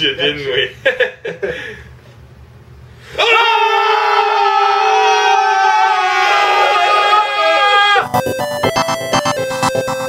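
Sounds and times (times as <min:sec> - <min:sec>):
men screaming together: 0:03.1 - 0:08.1.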